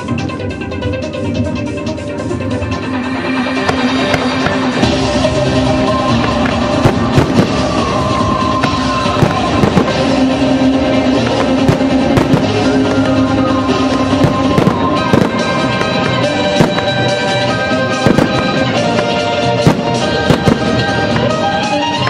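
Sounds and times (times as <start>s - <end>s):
music with sustained notes: 0.0s - 22.0s
firework shells bursting: 3.6s - 22.0s.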